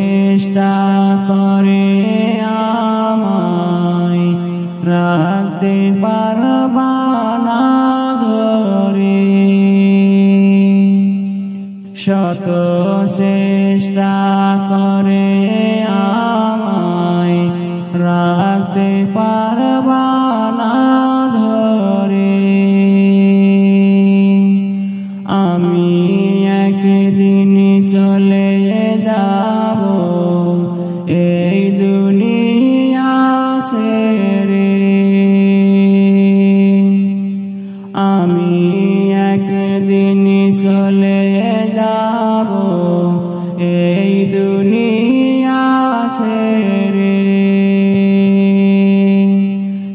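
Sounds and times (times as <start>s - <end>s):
man singing chant-like notes: 0.0s - 49.9s.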